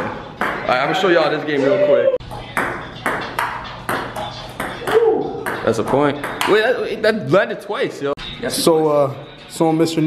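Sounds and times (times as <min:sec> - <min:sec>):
table tennis ball hits: 0:00.0 - 0:00.8, 0:02.3 - 0:06.7.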